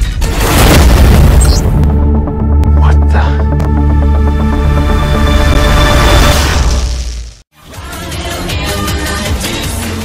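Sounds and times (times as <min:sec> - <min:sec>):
trailer music: 0:00.2 - 0:10.0
low music drone: 0:01.8 - 0:06.4.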